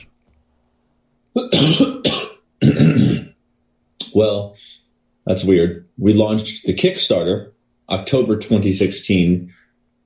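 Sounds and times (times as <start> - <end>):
man coughing: 1.4 - 3.4.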